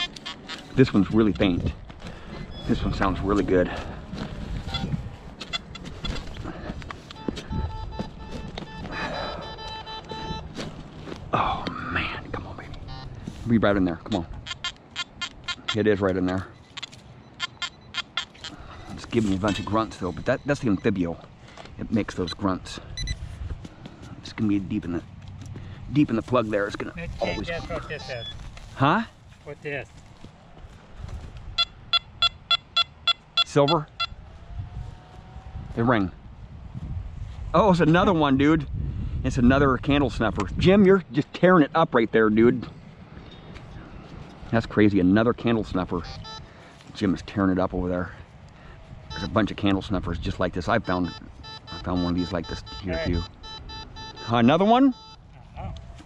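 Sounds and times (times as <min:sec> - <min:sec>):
metal detector beep: 0:00.0 - 0:00.9, 0:02.4 - 0:03.2, 0:04.6 - 0:06.3, 0:07.1 - 0:10.5, 0:12.7 - 0:13.2, 0:14.4 - 0:21.0, 0:23.0 - 0:23.2, 0:27.2 - 0:28.4, 0:31.6 - 0:34.2, 0:46.0 - 0:46.5, 0:49.1 - 0:49.6, 0:50.7 - 0:55.3.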